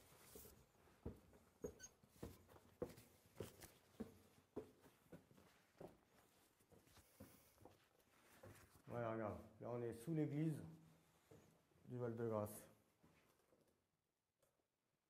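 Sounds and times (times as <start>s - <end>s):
footsteps in stone tunnel: 0.0s - 13.8s.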